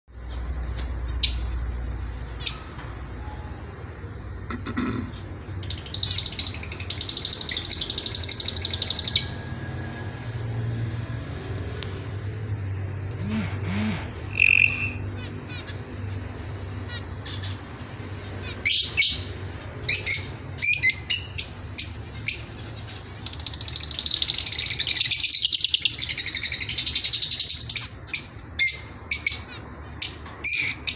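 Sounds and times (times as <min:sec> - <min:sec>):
finches calling and singing: 0:05.6 - 0:09.4, 0:13.1 - 0:15.8, 0:16.4 - 0:30.9.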